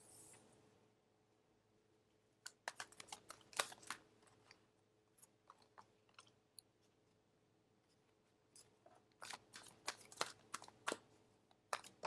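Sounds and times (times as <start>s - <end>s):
cards clicking and snapping: 2.4s - 4.1s.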